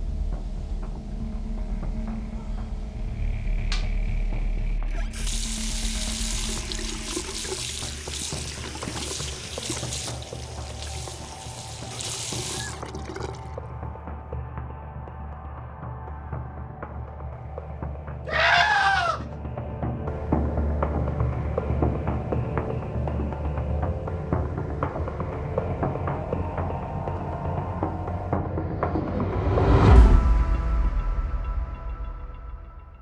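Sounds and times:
background music: 0:00.0 - 0:33.0
tap water running into sink: 0:05.1 - 0:13.6
high-pitched scream: 0:18.3 - 0:19.2.

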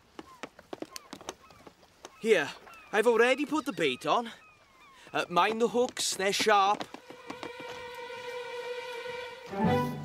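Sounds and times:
faint gull calls: 0:00.2 - 0:06.0.

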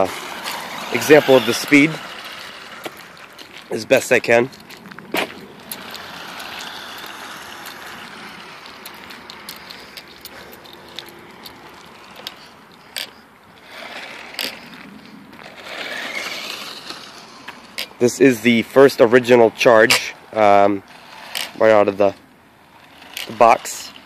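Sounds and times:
toy car electric motor whirring: 0:00.0 - 0:24.0
tyre noise on asphalt: 0:00.0 - 0:24.0.

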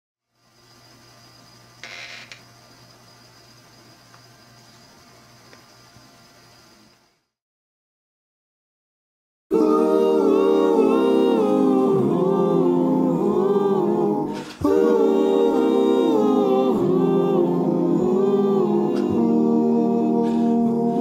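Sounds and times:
men humming in harmony: 0:09.5 - 0:21.0.

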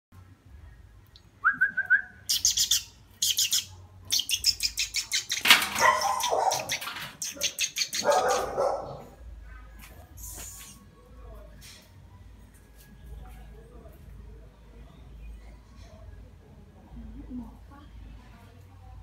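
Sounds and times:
owl clicking chatter: 0:02.3 - 0:08.5.

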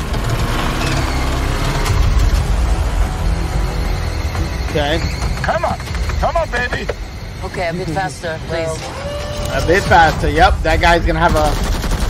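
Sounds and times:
car engine accelerating: 0:00.0 - 0:07.4
dramatic score music: 0:00.0 - 0:12.0
heavy low rumble: 0:00.0 - 0:12.0.

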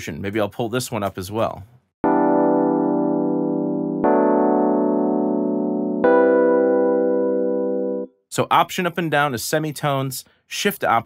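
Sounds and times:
electric piano chords: 0:02.0 - 0:08.1.

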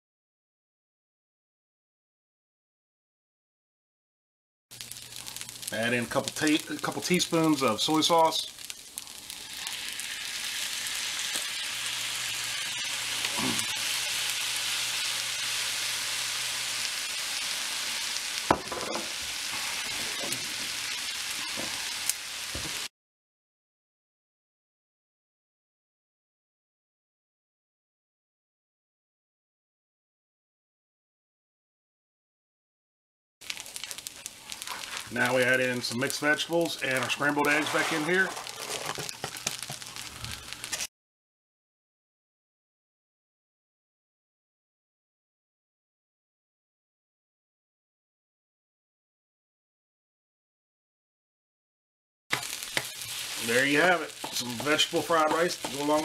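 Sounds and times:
rice sizzling in a hot pan: 0:04.7 - 0:22.9, 0:33.4 - 0:40.9, 0:52.3 - 0:56.0.

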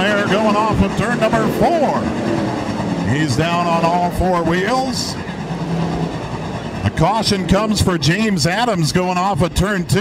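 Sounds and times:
race car engines droning: 0:00.0 - 0:10.0.

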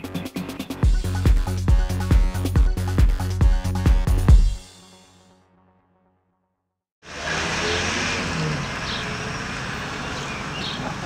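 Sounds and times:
traffic noise: 0:07.0 - 0:11.0.

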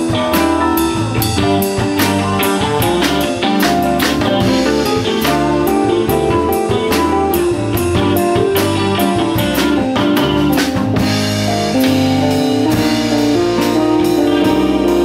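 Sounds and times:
bass guitar: 0:00.0 - 0:15.0
drum kit: 0:00.0 - 0:15.0
electric and acoustic guitars: 0:00.0 - 0:15.0
keyboard: 0:00.0 - 0:15.0.

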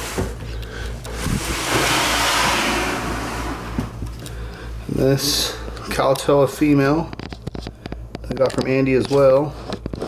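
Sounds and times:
plastic tub scraping out of rack: 0:01.1 - 0:04.1.

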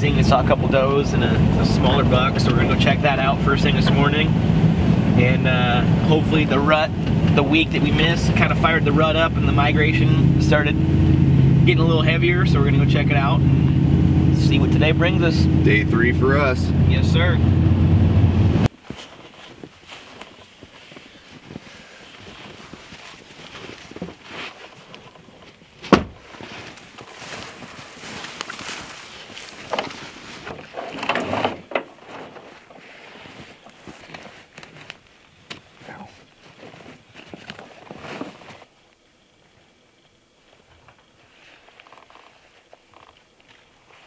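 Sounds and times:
pickup engine running: 0:00.0 - 0:18.7
gear rustling and knocking: 0:18.8 - 0:35.1.

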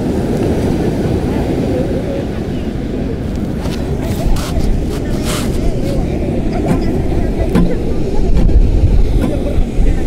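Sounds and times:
surf: 0:00.0 - 0:10.0
wind on microphone: 0:00.0 - 0:10.0
people talking: 0:00.4 - 0:10.0.

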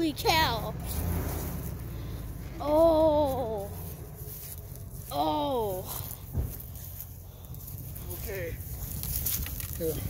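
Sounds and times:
dull thump: 0:06.3 - 0:06.7.

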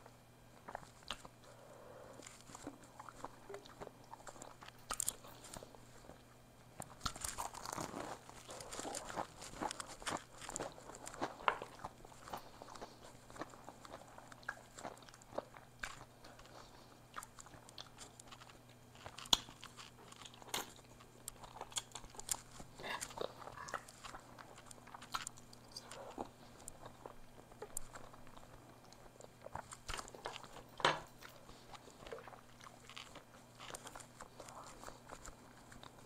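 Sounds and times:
chewing: 0:00.6 - 0:36.0
crunching bites of food: 0:00.6 - 0:36.0.

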